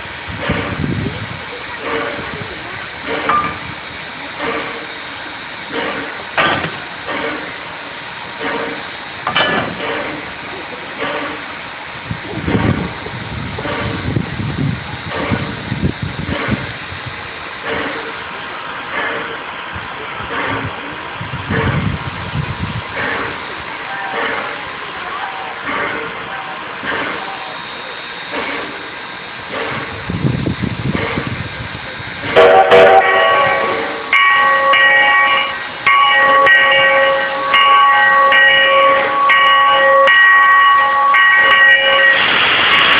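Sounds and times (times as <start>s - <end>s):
railway turntable chuffing: 0.0s - 42.9s.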